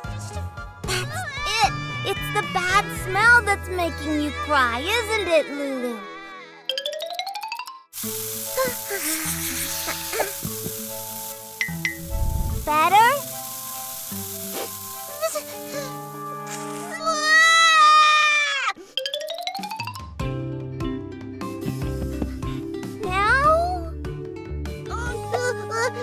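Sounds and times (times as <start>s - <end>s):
cartoon background music: 0.0s - 26.0s
aerosol spray hiss: 8.0s - 16.9s.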